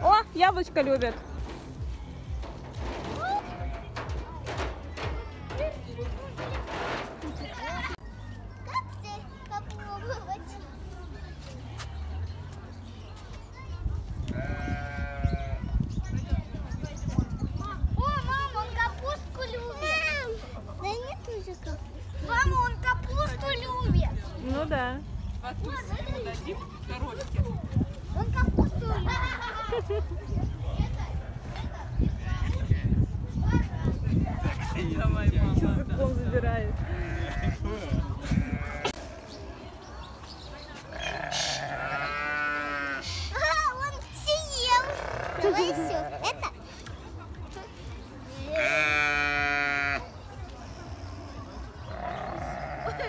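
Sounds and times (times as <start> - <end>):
children's voices: 7.3 - 10.9, 13.0 - 24.4, 25.5 - 30.0, 37.0 - 53.0
goat bleating: 14.3 - 15.5, 36.8 - 39.3, 40.9 - 43.2, 44.8 - 46.3, 48.6 - 50.1, 51.9 - 53.0.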